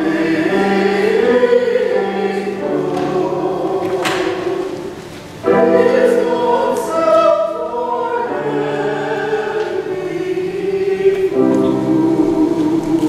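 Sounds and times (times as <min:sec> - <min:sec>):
church choir singing: 0:00.0 - 0:13.0.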